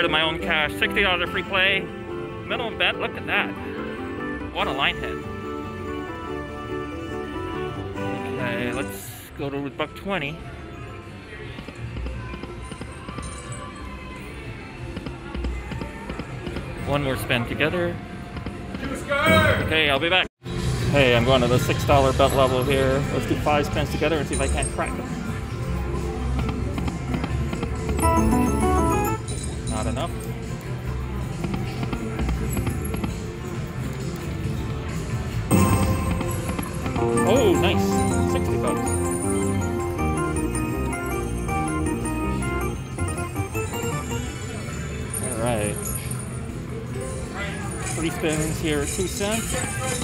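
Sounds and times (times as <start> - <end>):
casino chatter: 22.4 - 50.0
slot machine game music: 27.7 - 29.8, 35.5 - 46.1.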